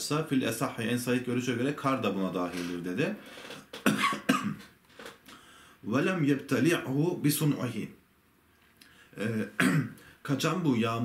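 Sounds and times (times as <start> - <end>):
man clearing his throat: 3.8 - 4.7, 9.5 - 10.0.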